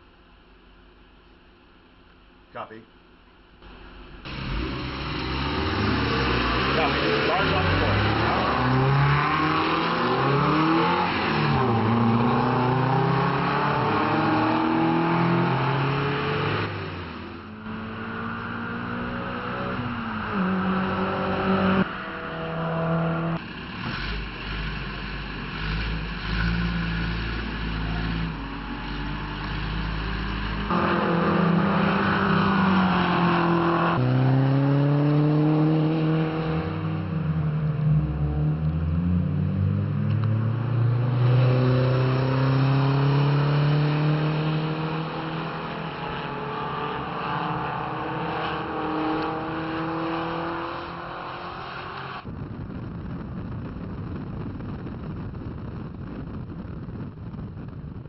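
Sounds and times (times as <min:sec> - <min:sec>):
sports car engines revving: 0:03.6 - 0:55.0.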